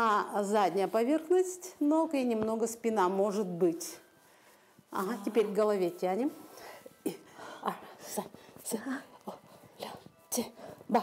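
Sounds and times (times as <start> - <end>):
soft speech and whispering: 0.0 - 11.0.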